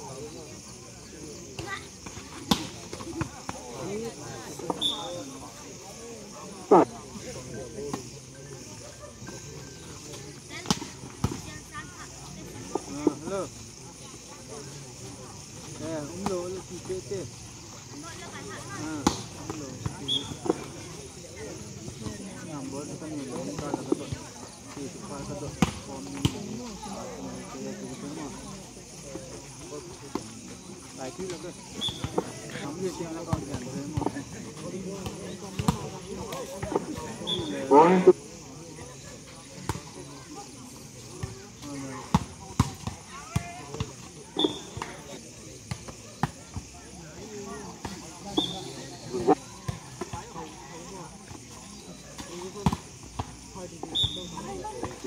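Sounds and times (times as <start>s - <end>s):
crowd voices: 0.0s - 55.0s.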